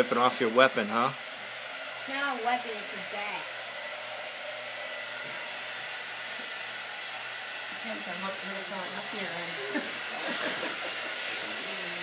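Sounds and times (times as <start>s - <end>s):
electric blower motor hissing: 0.0s - 12.0s.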